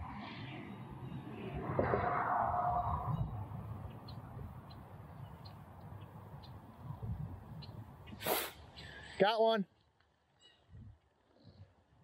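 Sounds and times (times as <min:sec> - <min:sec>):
wind buffeting microphone: 0:00.0 - 0:08.3, 0:10.7 - 0:12.0
short sharp hiss: 0:08.1 - 0:09.0.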